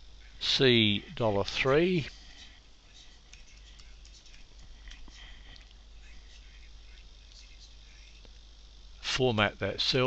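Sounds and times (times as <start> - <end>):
low steady hiss: 0.0 - 10.0
computer keyboard keystrokes: 3.3 - 5.0.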